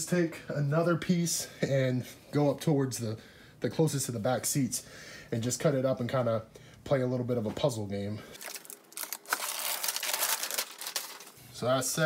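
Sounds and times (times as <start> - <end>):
foil mat crinkling and rustling: 8.4 - 11.4.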